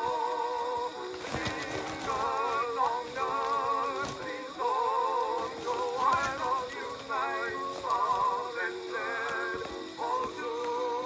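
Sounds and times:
record hiss: 0.0 - 11.0
singer with chorus: 0.0 - 11.0
record clicks: 1.1 - 10.7.

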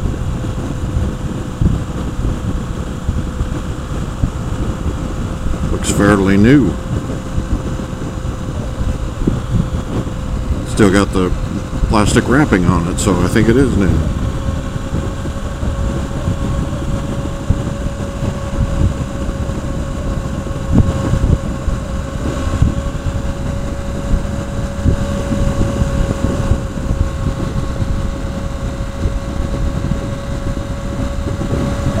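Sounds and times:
motorcycle engine drone: 0.0 - 32.0
thin whine: 0.0 - 32.0
wind buffeting microphone: 0.0 - 32.0.

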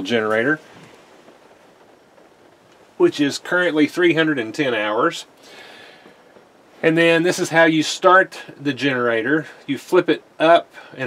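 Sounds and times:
low even hiss: 0.0 - 11.0.

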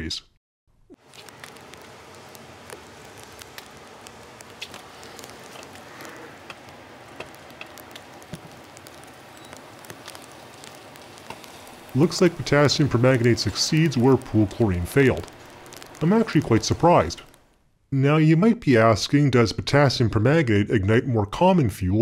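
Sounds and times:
chemical reaction hissing: 0.9 - 17.6
small crackles and ticks: 0.9 - 17.6.

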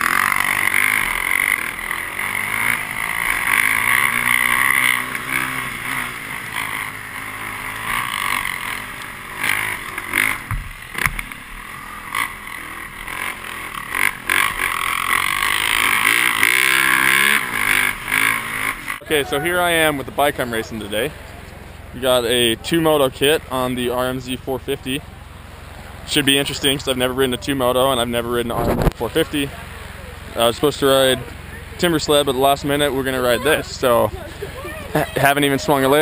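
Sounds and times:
dirt bike engine revving: 0.0 - 36.0
sharp knocks: 10.4 - 11.3.

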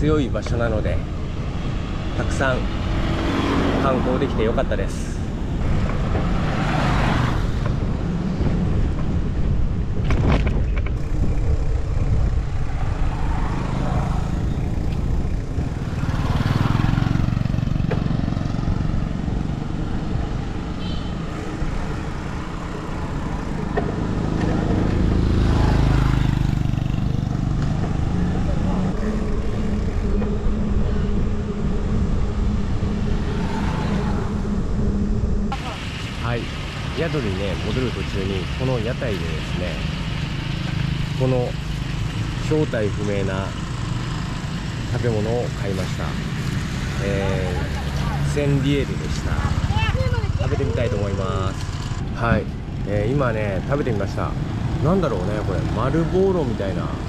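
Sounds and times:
road traffic passing: 0.0 - 57.0
wind buffeting microphone: 4.4 - 35.6.

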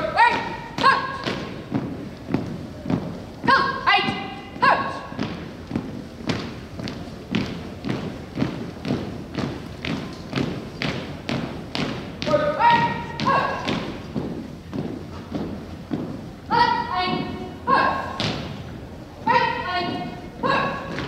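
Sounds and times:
person shouting commands: 0.0 - 1.4, 3.5 - 5.1, 12.2 - 13.8, 16.5 - 18.2, 19.2 - 21.0
marching footsteps on wooden floor: 0.0 - 21.0.

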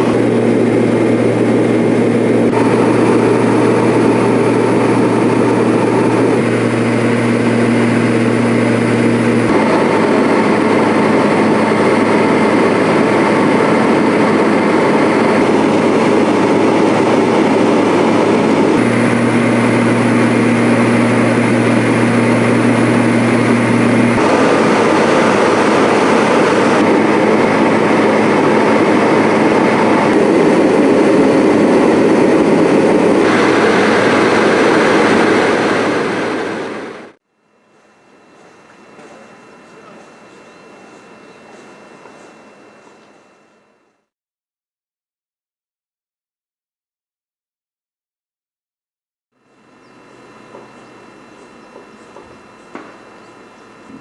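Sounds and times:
airliner engine drone: 0.0 - 44.1, 49.4 - 54.0.

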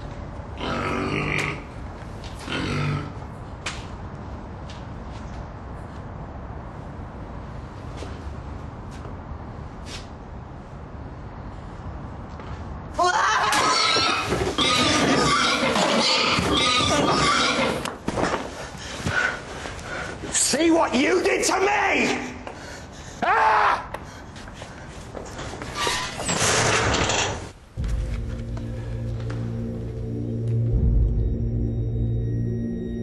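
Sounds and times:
woman screaming: 13.0 - 13.8.

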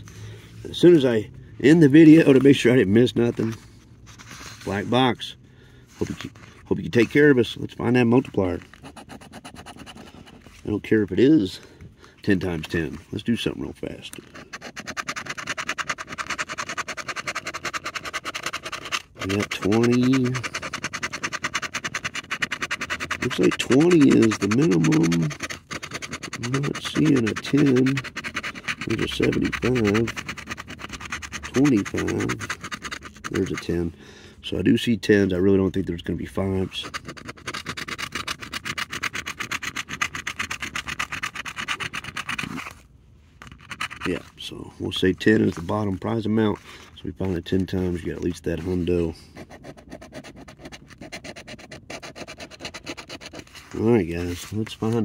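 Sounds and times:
coin scratching lottery ticket: 6.0 - 10.6, 14.2 - 33.9, 35.1 - 42.8, 43.4 - 44.3, 47.4 - 55.0.

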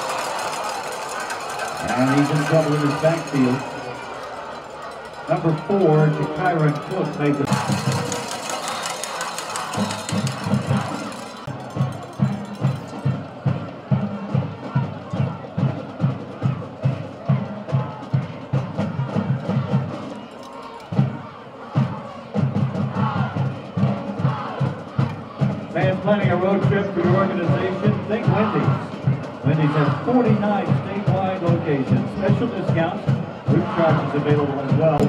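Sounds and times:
crowd noise: 0.0 - 35.0
drumline pounding: 0.0 - 35.0.

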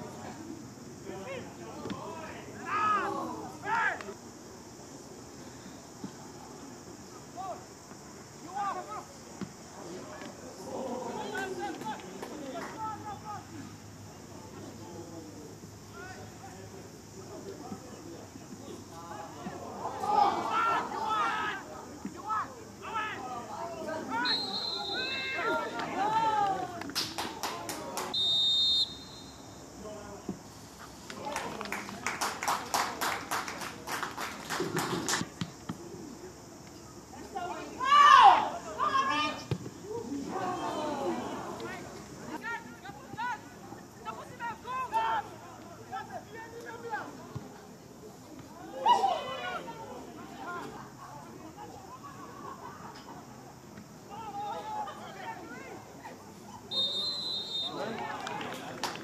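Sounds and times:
steady outdoor hiss: 0.0 - 59.0
voices shouting: 1.1 - 4.2, 9.8 - 14.3, 18.0 - 30.1, 37.1 - 47.2, 48.5 - 50.9, 54.1 - 58.5
referee's whistle: 24.2 - 25.8, 28.1 - 29.6, 56.7 - 57.9.

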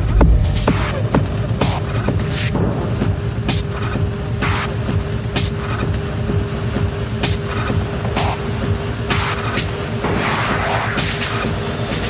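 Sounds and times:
dark techno music: 0.0 - 12.0.

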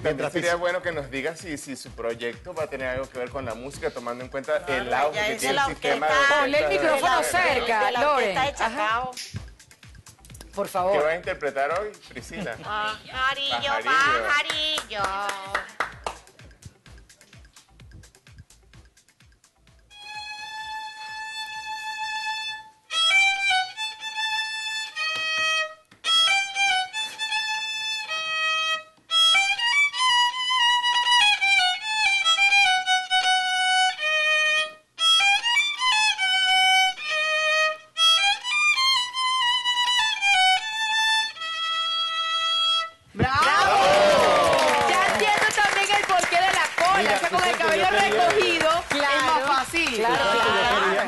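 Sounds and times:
solo violin melody: 19.9 - 43.1
audience applause: 43.4 - 51.0.

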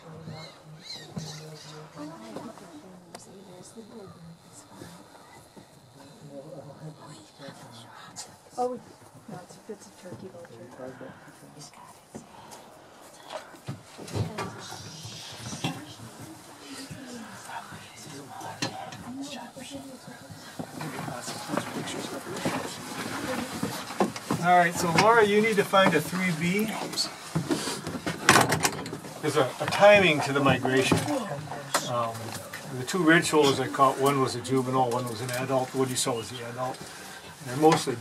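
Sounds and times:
murmur of voices: 0.0 - 38.0.

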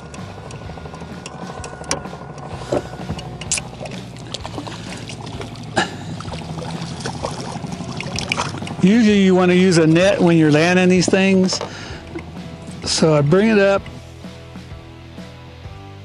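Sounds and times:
steady low hum: 0.0 - 15.0
fish splashing at water surface: 3.5 - 8.8.

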